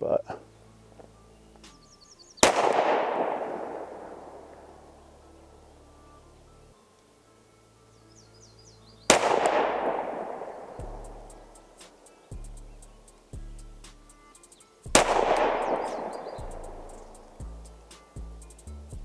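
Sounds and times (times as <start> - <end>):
pistol shots with echo: 2.4 - 5.2, 9.1 - 12.0, 14.9 - 17.4.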